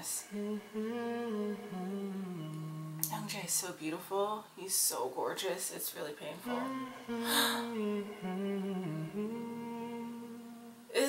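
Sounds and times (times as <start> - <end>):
woman humming long note: 0.0 - 3.4, 6.4 - 11.0.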